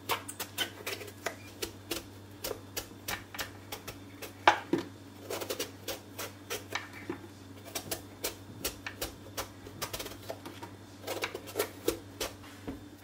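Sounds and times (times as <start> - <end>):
knife peeling eggplant skin: 5.2 - 6.8, 7.6 - 12.4.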